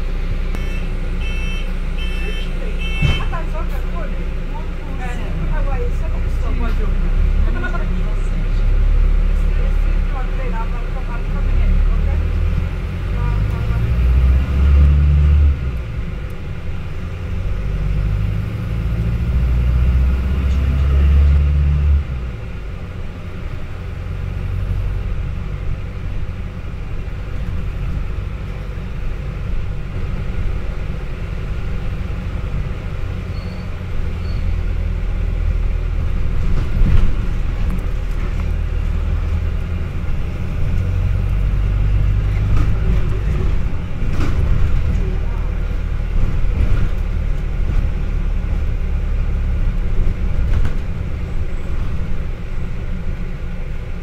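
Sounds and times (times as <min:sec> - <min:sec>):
bus engine and road rumble: 0:00.0 - 0:54.0.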